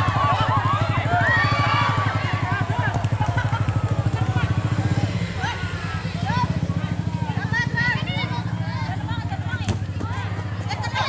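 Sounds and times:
crowd calling and chattering: 0.0s - 11.0s
small engine idling: 0.0s - 11.0s.

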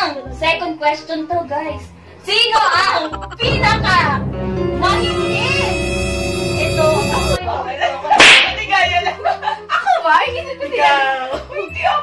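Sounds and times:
women talking: 2.3s - 4.2s, 7.4s - 12.0s
women laughing: 2.6s - 3.6s
loud sharp crack: 8.2s - 8.6s.

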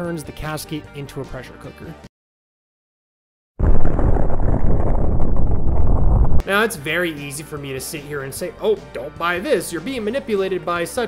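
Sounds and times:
explosion rumble: 3.6s - 6.4s.

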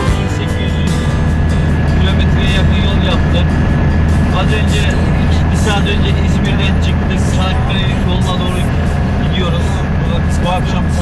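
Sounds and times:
vehicle engine drone from inside: 0.0s - 11.0s.

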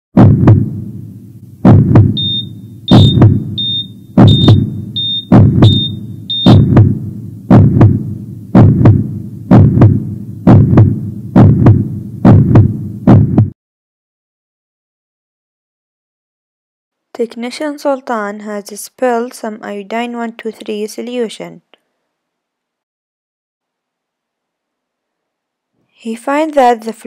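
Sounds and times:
heartbeat thumps: 0.2s - 0.8s, 1.6s - 13.6s
high beep: 2.2s - 6.7s.

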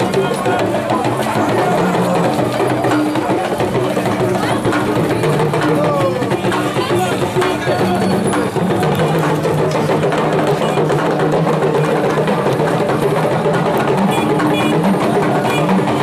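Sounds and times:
group of voices singing: 0.0s - 4.4s
percussion drumming: 0.0s - 16.0s.

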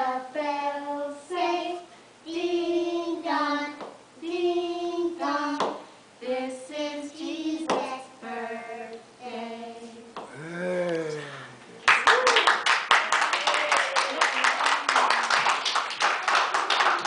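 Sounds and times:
children and women singing: 0.0s - 10.3s.

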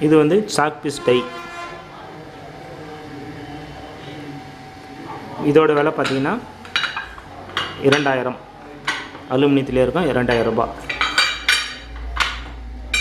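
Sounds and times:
steady low hum: 0.0s - 13.0s.

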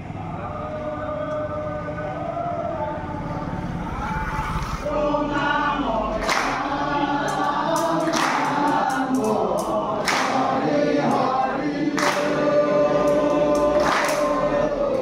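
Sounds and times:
men chanting in unison: 0.0s - 4.2s, 4.8s - 15.0s.

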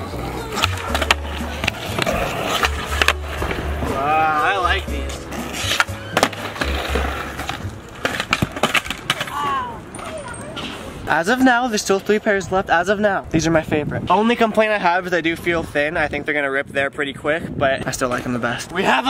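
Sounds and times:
skateboard clacking and landing: 0.0s - 9.5s
skateboard wheels rolling: 0.0s - 12.5s.

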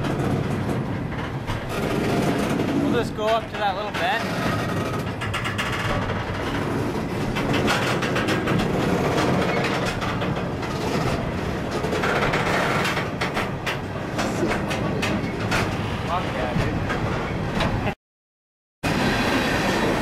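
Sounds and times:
wheels clicking and clanking: 0.0s - 17.8s
steel wheels rumbling on rail: 0.0s - 17.9s, 18.8s - 20.0s.

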